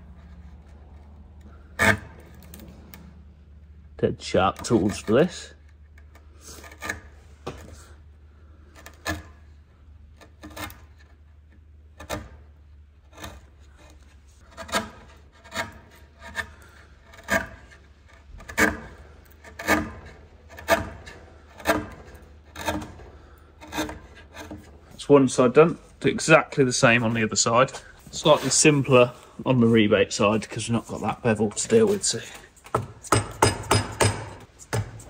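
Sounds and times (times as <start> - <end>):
chisel scraping wood: 0.0 - 3.3, 4.4 - 35.0.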